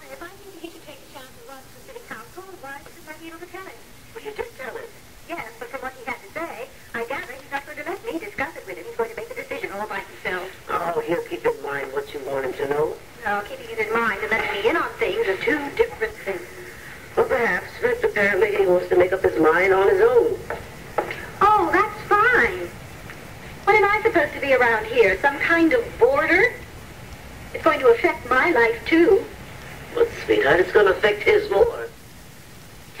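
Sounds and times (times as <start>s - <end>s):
indistinct speech: 0.0s - 22.8s, 23.6s - 26.6s, 27.5s - 31.9s.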